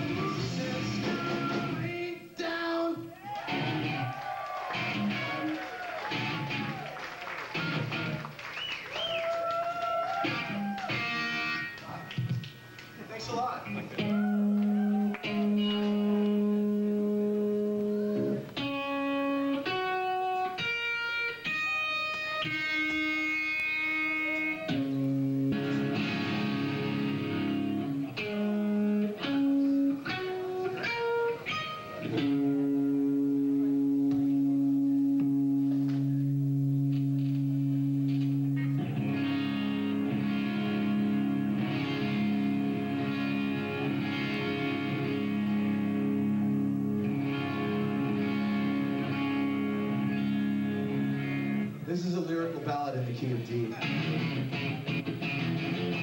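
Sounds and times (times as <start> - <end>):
electric guitar notes and chord: 4.7 - 6.8, 7.5 - 8.3, 10.2 - 11.8, 13.7 - 51.9, 53.7 - 56.0.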